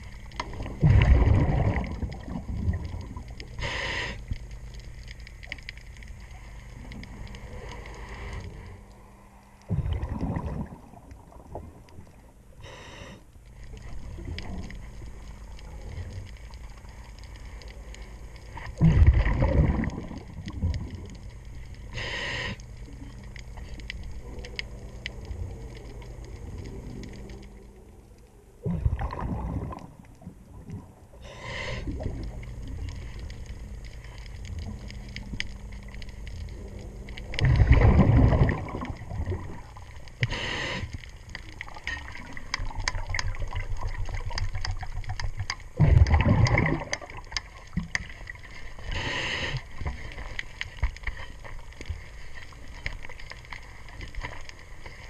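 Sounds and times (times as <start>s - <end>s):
exhaled bubbles rushing underwater: 0.0s - 8.7s, 9.6s - 12.6s, 13.5s - 55.0s
low steady hum: 0.0s - 55.0s
faint clicks: 1.8s - 9.7s, 10.9s - 18.8s, 19.7s - 28.4s, 31.7s - 37.6s, 38.7s - 55.0s
regulator hissing inhalation: 3.6s - 4.3s, 12.6s - 13.2s, 21.9s - 22.6s, 31.2s - 32.0s, 40.2s - 41.0s, 48.9s - 49.7s
diver's regulator hissing: 40.2s - 41.0s.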